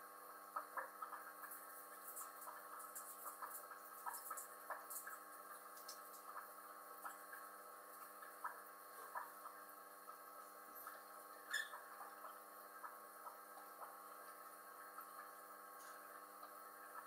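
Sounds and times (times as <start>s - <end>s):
electrical hum: 0.0s - 17.0s
faint ticks: 0.4s - 10.2s, 10.8s - 17.0s.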